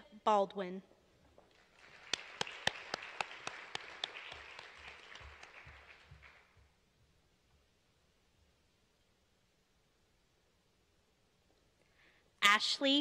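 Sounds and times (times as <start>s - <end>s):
sharp single claps: 1.5s - 6.5s
audience applauding: 1.5s - 6.7s.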